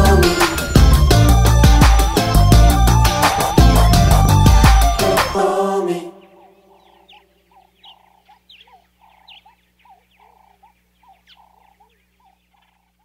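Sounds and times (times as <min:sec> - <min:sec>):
birds chirping: 0:00.0 - 0:13.0.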